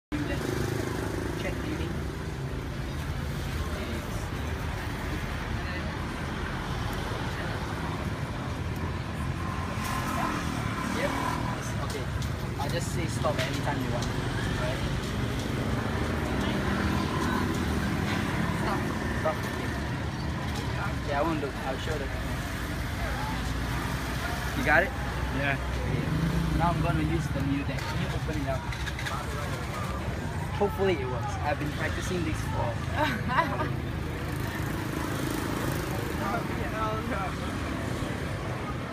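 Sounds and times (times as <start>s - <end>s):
faint voices: 0.1s - 38.9s
traffic engine rumble: 0.1s - 38.9s.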